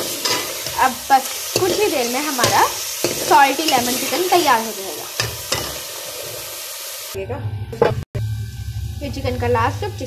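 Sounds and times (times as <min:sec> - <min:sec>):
food sizzling in a pot: 0:00.0 - 0:07.3, 0:08.2 - 0:10.0
low hum: 0:07.2 - 0:10.0.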